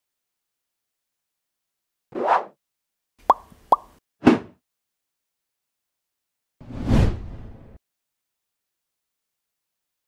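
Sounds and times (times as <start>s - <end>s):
pop sound effects: 3.3s - 4.4s
brief whoosh: 6.6s - 7.8s.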